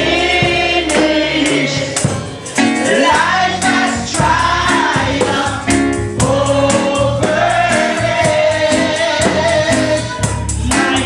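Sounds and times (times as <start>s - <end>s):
band with bass and beat: 0.0s - 11.0s
congregation singing gospel song: 0.0s - 11.0s.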